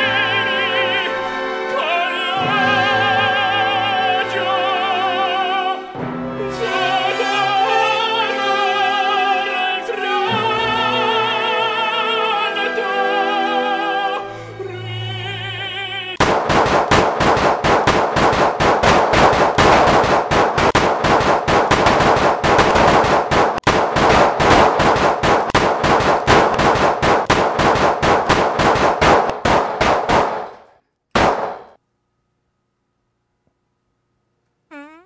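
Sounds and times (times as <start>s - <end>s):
handgun gunfire volley: 16.2s - 31.8s.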